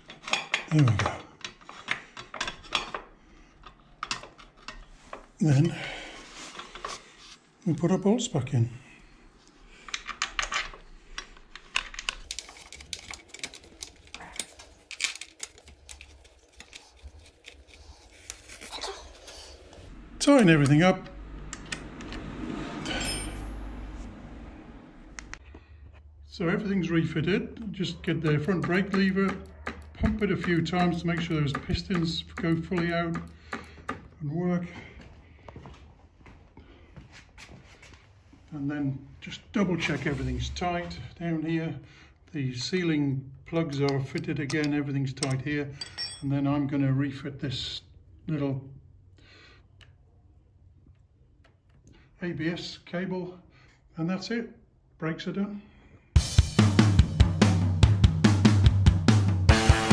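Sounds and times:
faint shuffling handling noise: 0:34.6 - 0:38.8
metallic clicks of bolts and spanner: 0:43.7 - 0:46.1.

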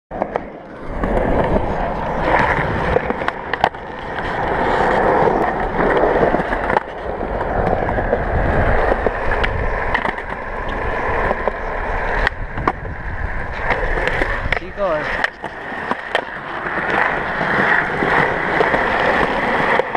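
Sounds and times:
skateboard clicks: 0:00.1 - 0:19.9
skateboard wheels rolling on concrete: 0:00.1 - 0:19.9.

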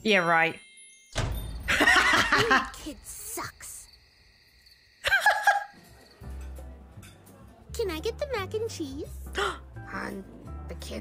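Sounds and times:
woman giggling: 0:01.8 - 0:02.7, 0:05.0 - 0:05.8.

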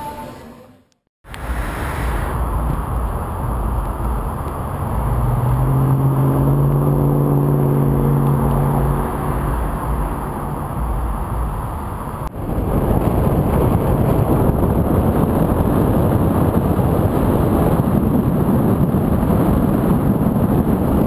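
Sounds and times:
rough rushing noise: 0:01.2 - 0:21.0
engine humming at steady pitch: 0:01.3 - 0:21.0
traffic engines rumbling: 0:01.3 - 0:21.0.

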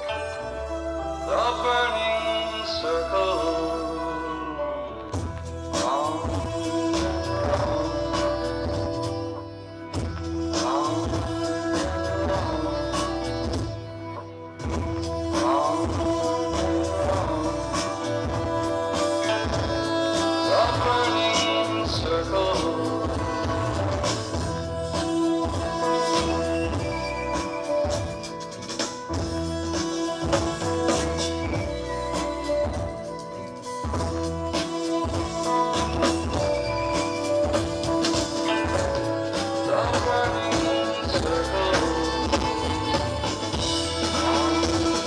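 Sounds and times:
bass line: 0:00.0 - 0:45.0
held melodic notes: 0:00.0 - 0:45.0.

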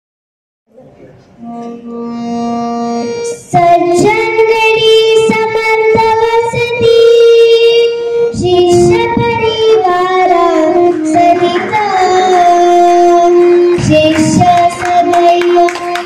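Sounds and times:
girl singing into a microphone: 0:01.5 - 0:16.0.

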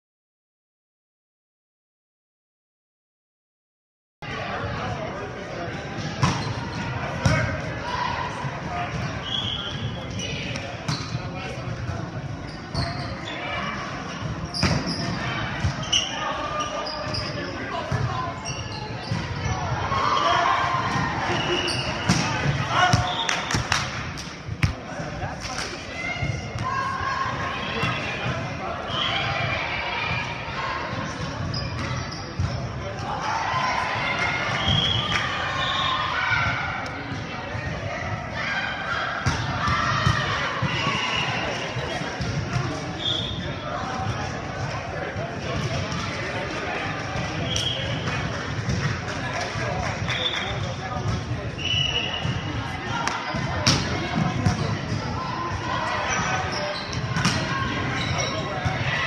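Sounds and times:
chatter: 0:04.2 - 0:59.0
players shouting: 0:19.2 - 0:23.7, 0:25.8 - 0:31.2, 0:32.9 - 0:42.3
volleyball slaps: 0:22.0 - 0:25.8, 0:53.0 - 0:54.7, 0:57.2 - 0:57.5.

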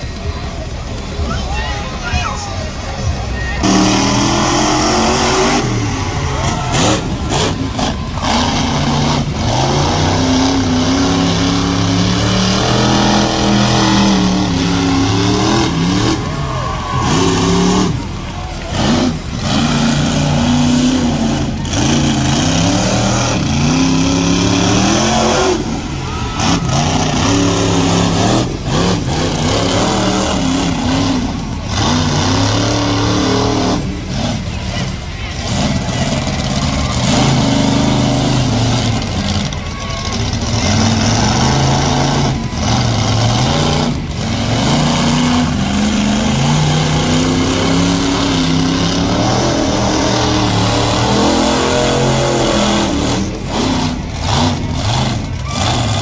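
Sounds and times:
monster truck engines revving: 0:00.0 - 0:56.0.

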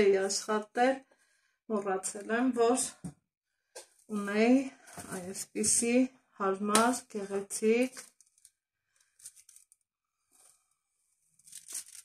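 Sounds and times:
parchment paper rustling and crinkling: 0:07.8 - 0:10.6, 0:11.3 - 0:12.0.

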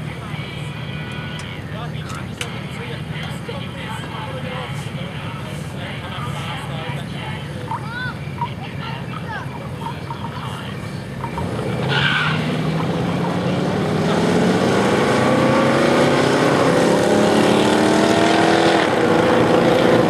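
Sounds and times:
hot rod engines accelerating: 0:00.0 - 0:20.0.

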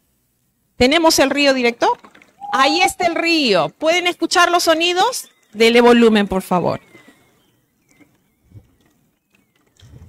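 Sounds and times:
bird chirps over loudspeakers: 0:02.4 - 0:03.6.

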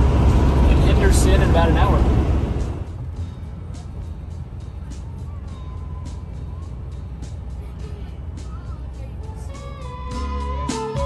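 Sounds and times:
motorhome driving drone: 0:00.0 - 0:11.0
background music: 0:00.6 - 0:11.0.

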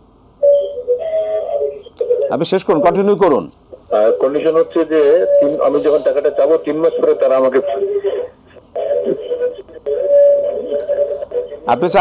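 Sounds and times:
voice over telephone line: 0:02.0 - 0:12.0.

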